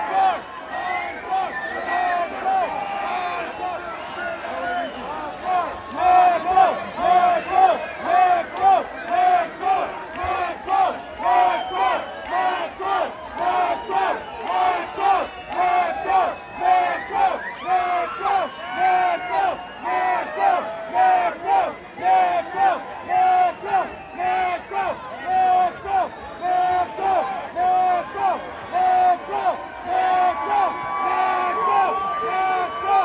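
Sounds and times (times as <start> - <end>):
crowd chanting in unison: 0.0 - 33.0.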